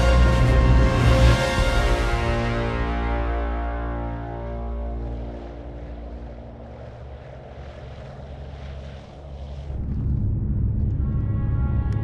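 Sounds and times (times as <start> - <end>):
piston aircraft engines droning: 0.0 - 12.0
rushing air: 4.2 - 10.8.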